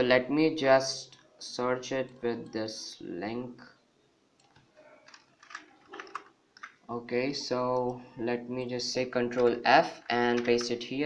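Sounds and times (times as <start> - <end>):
computer keyboard clicks: 4.4 - 6.8, 10.0 - 10.8.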